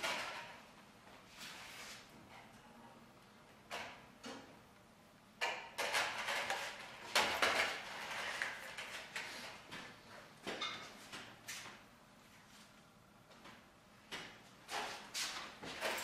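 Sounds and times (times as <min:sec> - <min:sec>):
tape rustling and scraping: 0:05.8 - 0:09.9.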